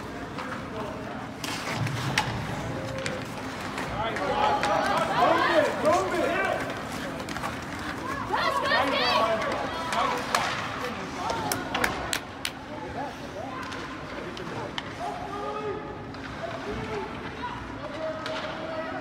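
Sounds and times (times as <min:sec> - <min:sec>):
steady rink din: 0:00.0 - 0:12.6, 0:13.2 - 0:19.0
hockey sticks and puck clacking: 0:00.0 - 0:12.7, 0:13.5 - 0:15.1, 0:16.0 - 0:18.9
people shouting in rink: 0:01.9 - 0:12.1, 0:12.9 - 0:19.0.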